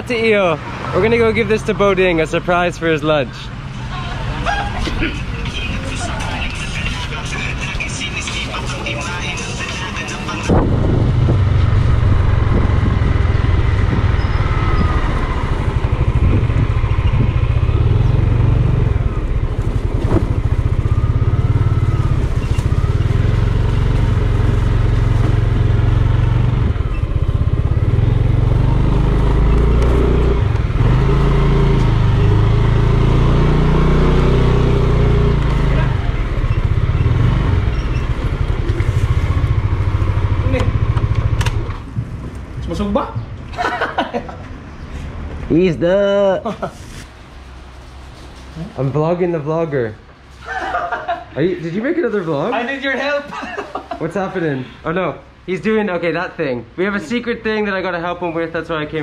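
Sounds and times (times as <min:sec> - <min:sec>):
scooter engine running: 0:11.1 - 0:41.9.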